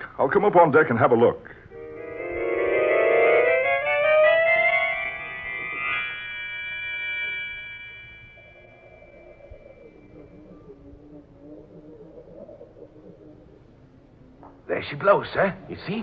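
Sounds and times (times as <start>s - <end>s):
organ run settling on chord: 1.7s - 10.5s.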